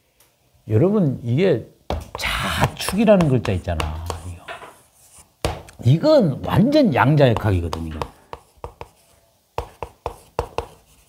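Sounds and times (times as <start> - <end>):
chalk tapping and scraping: 1.9 - 5.8, 7.1 - 11.0.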